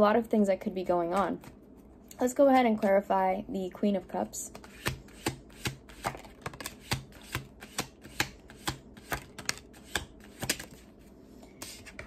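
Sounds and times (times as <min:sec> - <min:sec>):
cards being shuffled: 0:04.5 - 0:10.9.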